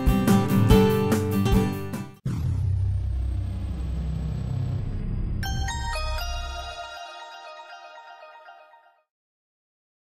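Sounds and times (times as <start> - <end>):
low rumbling drone: 2.2 - 6.8.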